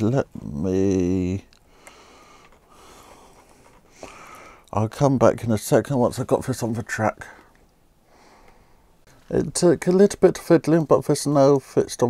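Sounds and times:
plastic scraping on steel rails: 0:02.2 - 0:04.4.

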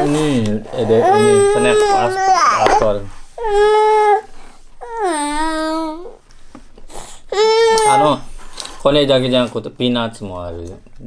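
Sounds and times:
toddler crying and whining: 0:00.8 - 0:06.2, 0:07.3 - 0:08.2.

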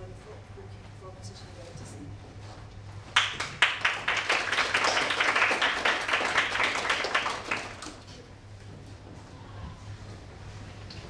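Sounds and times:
steady low hum: 0:00.0 - 0:11.0
audience applause: 0:03.2 - 0:08.0.

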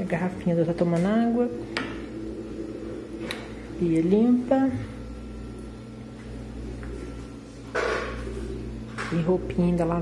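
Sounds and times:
washing machine humming: 0:00.0 - 0:10.0.

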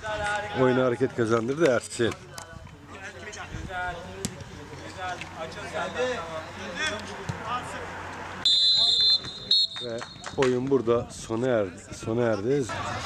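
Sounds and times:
players' voices: 0:00.0 - 0:13.0
referee's whistle blowing: 0:08.4 - 0:10.3.

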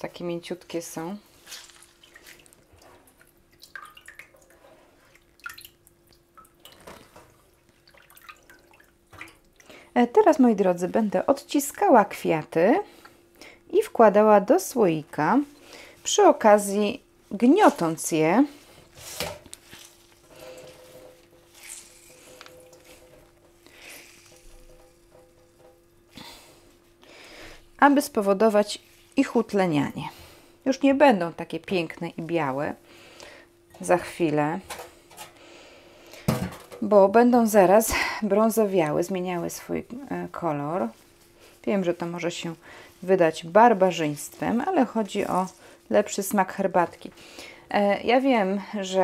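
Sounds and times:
flowers crushed by hand rustling: 0:01.4 - 0:02.5, 0:20.8 - 0:25.6
small splashes: 0:01.4 - 0:09.8
water dripping into sink: 0:01.7 - 0:09.7.

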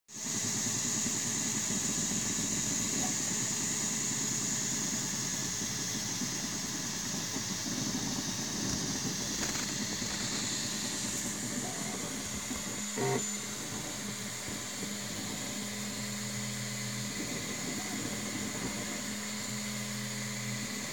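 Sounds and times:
cooling fans whirring: 0:00.1 - 0:20.9
stepper motors humming: 0:00.2 - 0:20.9.

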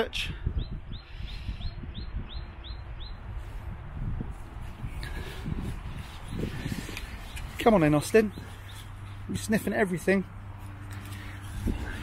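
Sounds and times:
steady low rumble: 0:00.5 - 0:09.4.

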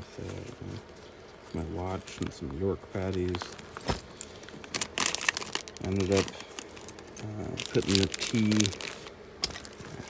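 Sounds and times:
food wrappers crinkling: 0:02.0 - 0:10.0.

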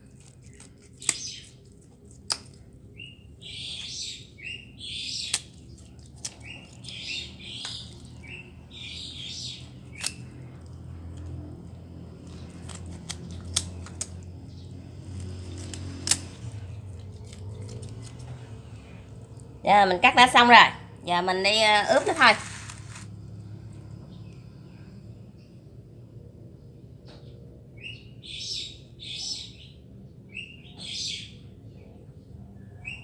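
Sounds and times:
scissors cutting raw chicken: 0:00.0 - 0:02.8, 0:05.0 - 0:08.4, 0:09.1 - 0:18.6
birds chirping: 0:02.5 - 0:10.5.

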